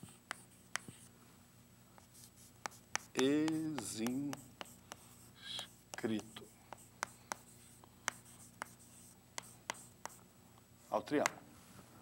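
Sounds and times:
chalk strokes on chalkboard: 0:02.0 - 0:10.2.

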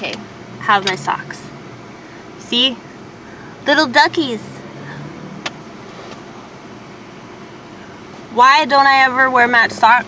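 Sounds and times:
car cabin hum and hiss: 0:00.0 - 0:10.0.

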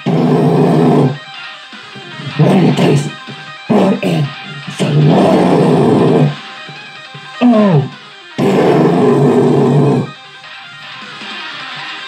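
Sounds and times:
guitar slide: 0:00.0 - 0:10.2
distorted heavy metal guitar: 0:00.0 - 0:12.0.

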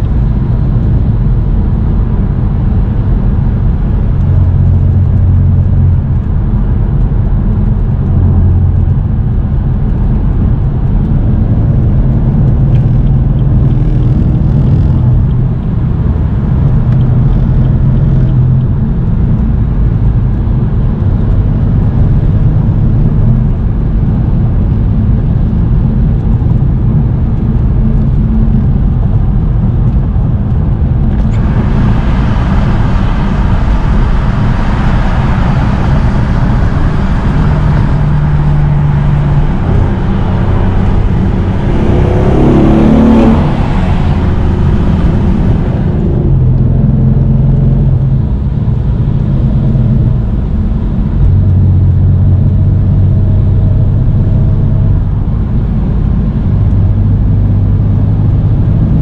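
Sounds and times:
car engine droning: 0:00.0 - 0:59.0
rush of wind and road noise: 0:00.0 - 0:59.0.

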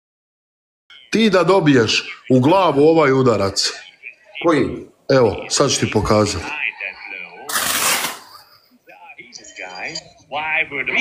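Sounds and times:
faint muffled voices: 0:03.5 - 0:11.0.

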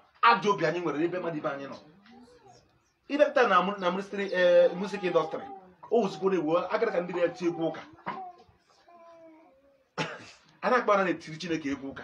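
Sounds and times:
man speaking loudly: 0:00.2 - 0:01.8, 0:03.1 - 0:08.0.

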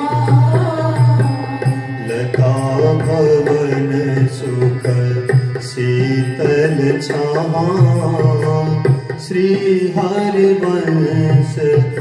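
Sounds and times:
devotional melody: 0:00.0 - 0:12.0.

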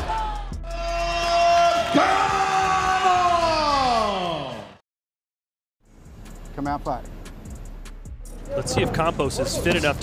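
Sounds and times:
long drawn-out shout: 0:00.0 - 0:04.8.

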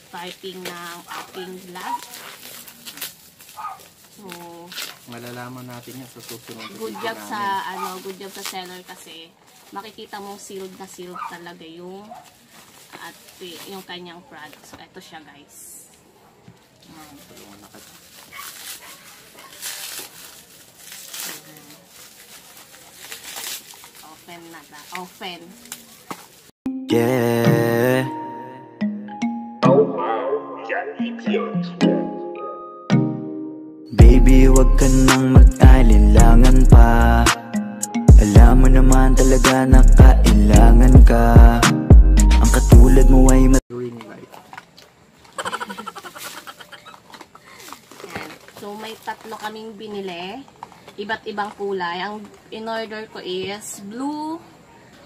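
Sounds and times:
bubble wrap crinkling: 0:00.0 - 0:14.6, 0:16.6 - 0:26.6, 0:44.3 - 0:51.6
woman giggling: 0:45.4 - 0:47.7.

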